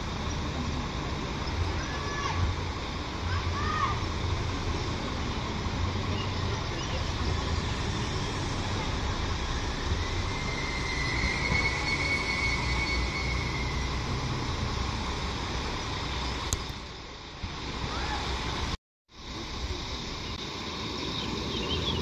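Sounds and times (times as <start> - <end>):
train engine and rail rumble: 0.0 - 22.0
high brake squeal: 6.1 - 14.9.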